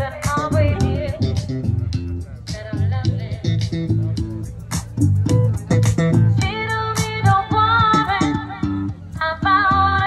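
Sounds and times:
live band music: 0.0 - 9.6
electric bass line: 0.0 - 10.0.

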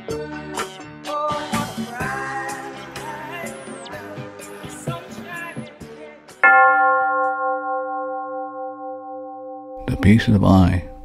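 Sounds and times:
background music: 0.0 - 7.4
bell ringing: 6.4 - 11.0.

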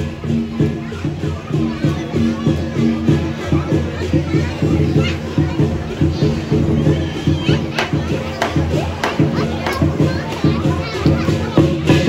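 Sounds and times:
crowd voices: 0.0 - 12.0
drum cymbals and gong percussion: 0.0 - 12.0.

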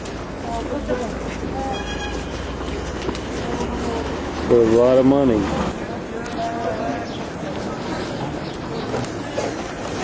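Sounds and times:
distant voices: 0.0 - 10.0
low rumble of traffic: 0.0 - 10.0.

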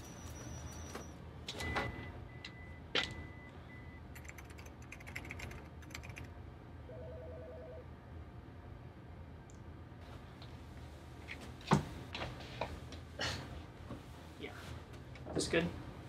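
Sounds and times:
computer keyboard typing: 4.2 - 6.3.

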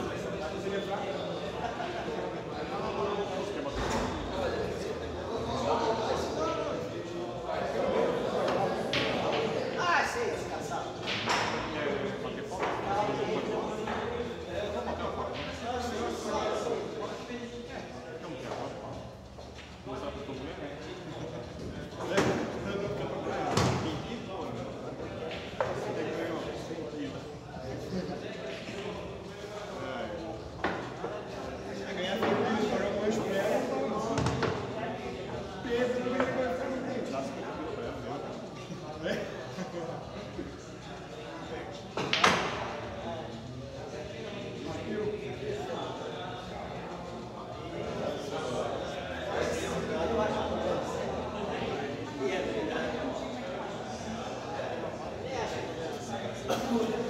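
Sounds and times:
men's voices chattering: 0.0 - 57.0.

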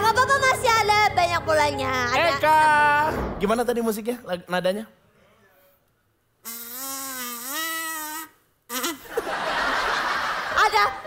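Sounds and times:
toy trumpet note: 6.4 - 8.9
people laughing: 9.0 - 11.0.

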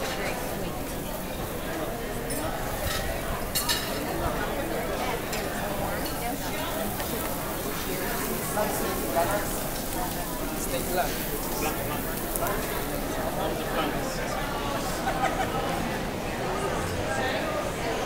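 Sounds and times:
chatter of many people: 0.0 - 18.0
dishes clinking: 2.2 - 4.2.

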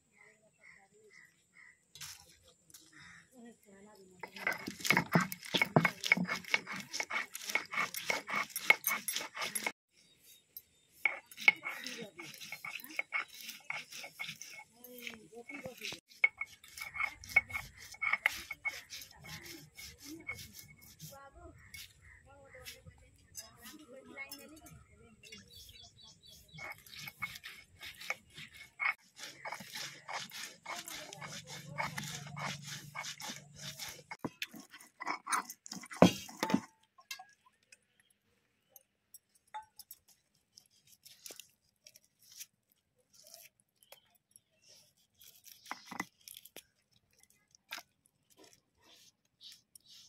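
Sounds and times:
squeaky stone grinding strokes: 4.2 - 37.4, 39.2 - 50.0.

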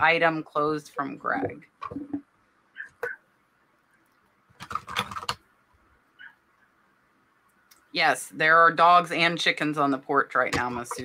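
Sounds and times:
computer keyboard typing: 4.6 - 5.4.

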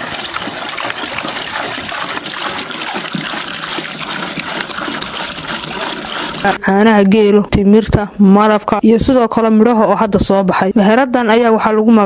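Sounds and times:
milk pouring and splashing into pot: 0.0 - 6.6.

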